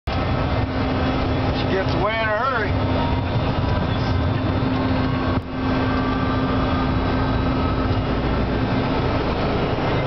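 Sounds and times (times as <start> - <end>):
constant low hum: 0.1 - 10.0
jet engine and airflow rush: 0.1 - 10.0.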